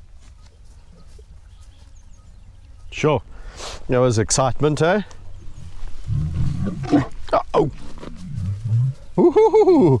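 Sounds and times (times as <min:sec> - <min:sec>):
lion growling low: 0:06.0 - 0:09.2.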